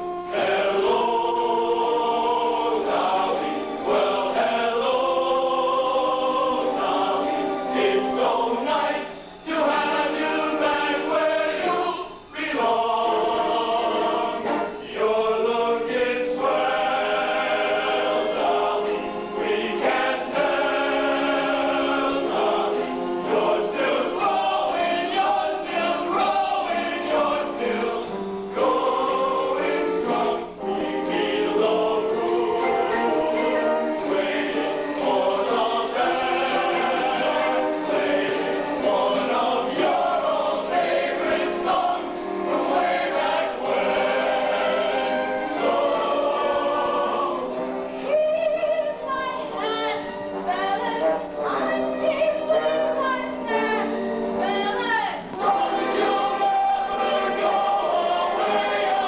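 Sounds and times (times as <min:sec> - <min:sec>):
choir singing a show tune: 0:00.0 - 0:59.0.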